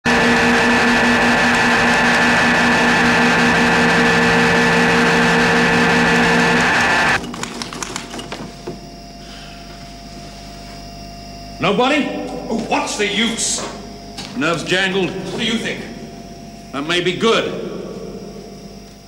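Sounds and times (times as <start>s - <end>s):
harsh electronic noise through loudspeaker: 0.0s - 8.1s
steady hum: 0.0s - 19.0s.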